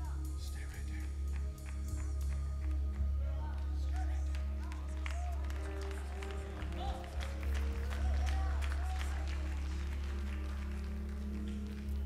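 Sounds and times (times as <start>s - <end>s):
live gospel band music: 0.0s - 12.0s.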